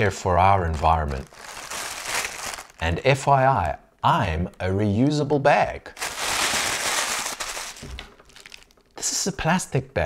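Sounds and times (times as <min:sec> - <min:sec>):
plastic bag crinkling: 0:00.6 - 0:02.9, 0:05.9 - 0:09.0.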